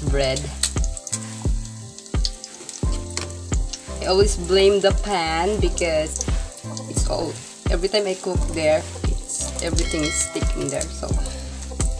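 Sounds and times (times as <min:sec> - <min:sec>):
background music with beat: 0:00.0 - 0:11.9
egg sizzling in oil: 0:00.0 - 0:11.9.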